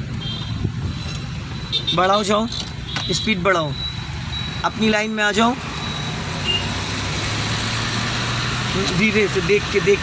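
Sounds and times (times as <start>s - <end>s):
road and tyre noise: 0.0s - 10.0s
car engine hum: 3.6s - 10.0s.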